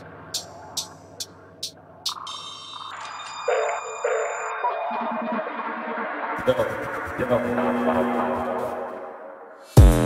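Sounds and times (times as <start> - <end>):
high ringing tones: 2.1 - 9.6.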